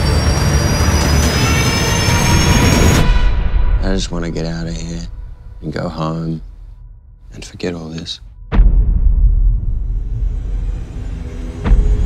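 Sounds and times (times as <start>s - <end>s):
rising whine: 0.0s - 5.6s, 9.5s - 12.0s
deep rumble: 0.0s - 12.0s.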